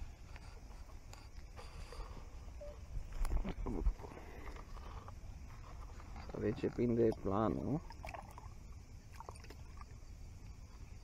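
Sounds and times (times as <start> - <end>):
wind rumble on microphone: 2.8 - 9.0.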